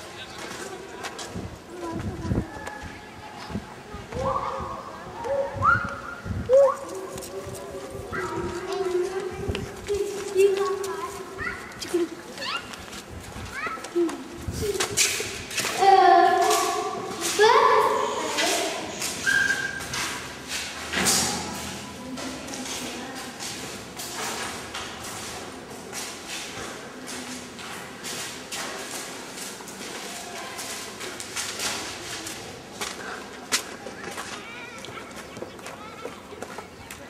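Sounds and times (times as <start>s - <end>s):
children chattering and calling: 0.0s - 37.0s
footsteps and knocks: 6.8s - 37.0s.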